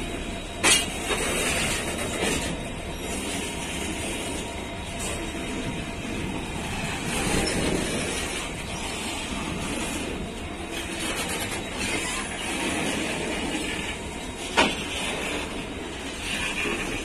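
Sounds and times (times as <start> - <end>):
freight wagon wheels rumbling: 0.0 - 17.0.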